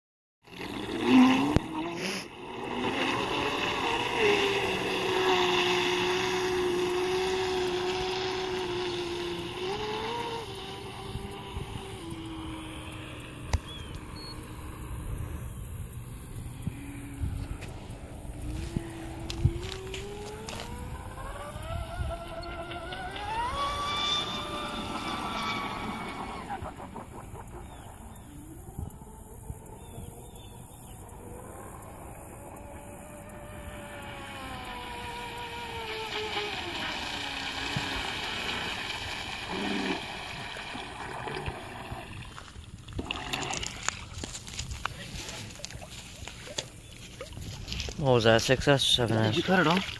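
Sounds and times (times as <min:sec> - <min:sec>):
boat hull rushing over water: 0:00.4 - 0:49.9
electric motor whining: 0:00.5 - 0:42.7.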